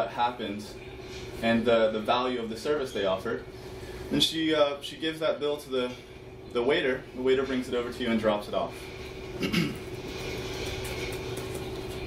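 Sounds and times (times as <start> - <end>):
thin steady hum: 0.0 - 12.0.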